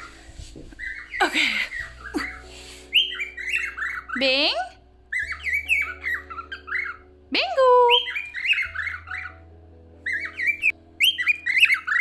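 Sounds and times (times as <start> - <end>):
cockatiel chirping and warbling: 0.8 - 12.0.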